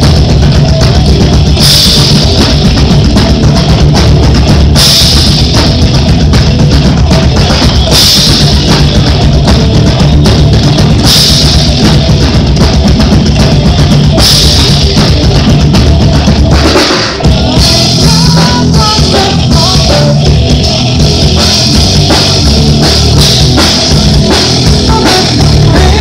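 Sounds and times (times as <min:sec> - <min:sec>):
rock band playing instrumental: 0:00.0 - 0:26.0.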